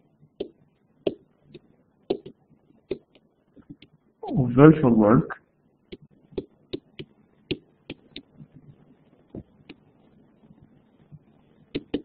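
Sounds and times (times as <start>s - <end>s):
stylus tapping on tablet screen: 0.4s - 4.0s, 5.9s - 8.6s, 11.1s - 12.0s.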